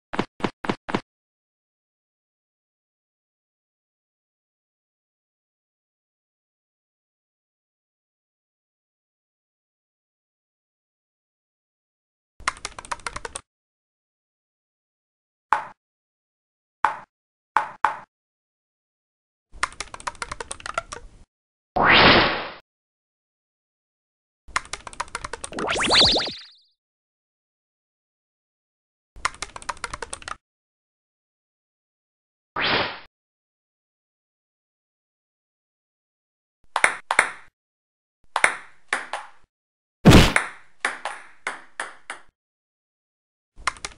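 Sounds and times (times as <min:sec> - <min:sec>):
computer keyboard typing: 0:12.5 - 0:13.4, 0:19.6 - 0:21.0, 0:24.6 - 0:25.5, 0:29.2 - 0:30.4
loud crash: 0:40.1 - 0:40.4.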